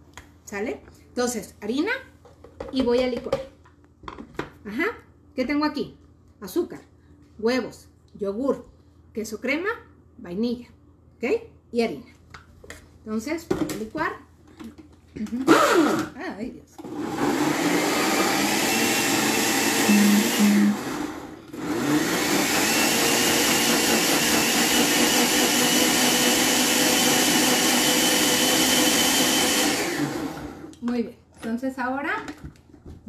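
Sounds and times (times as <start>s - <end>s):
blender motor whining: 15.4s - 16.2s, 16.8s - 30.8s.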